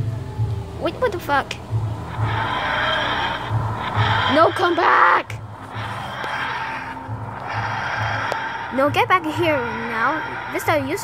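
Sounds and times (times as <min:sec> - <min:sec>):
wheezing groaning hum: 0:00.0 - 0:11.0.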